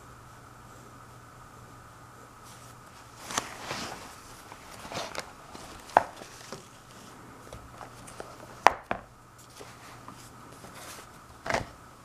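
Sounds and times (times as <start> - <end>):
paper sliding and rustling: 2.4 - 8.6, 9.4 - 11.7.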